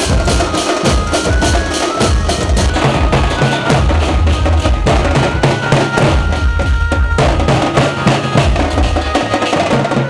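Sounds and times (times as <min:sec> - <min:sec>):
drum-driven procession music: 0:00.0 - 0:10.0.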